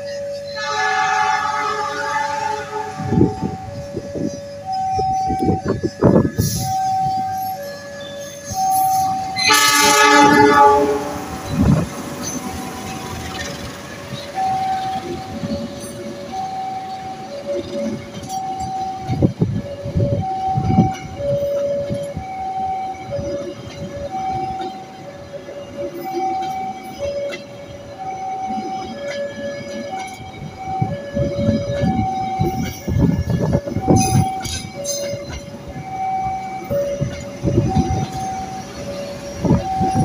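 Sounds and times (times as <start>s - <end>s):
train wheels rumbling on rails: 0.0s - 40.0s
level crossing alarm two tones: 0.2s - 13.2s, 14.3s - 40.0s
locomotive horn blast: 0.6s - 3.8s, 9.3s - 11.9s.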